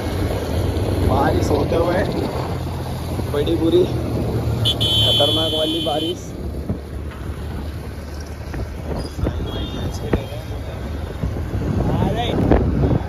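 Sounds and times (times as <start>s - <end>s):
wind buffeting microphone: 6.3s - 13.0s.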